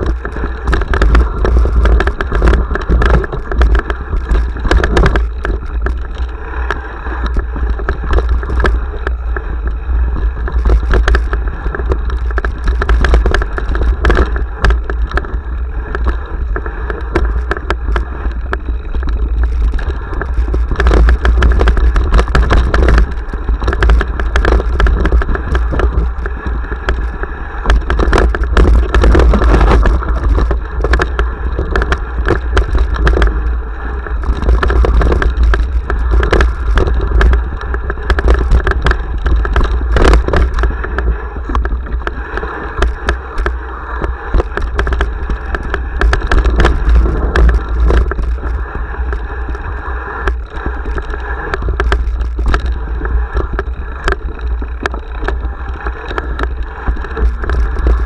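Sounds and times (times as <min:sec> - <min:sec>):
bike rattling over rocks: 0:00.0 - 0:58.0
wind rumble on microphone: 0:00.0 - 0:58.0.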